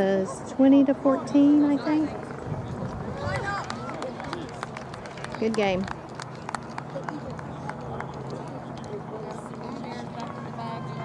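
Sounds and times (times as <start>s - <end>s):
distant voices chattering: 0.0s - 11.0s.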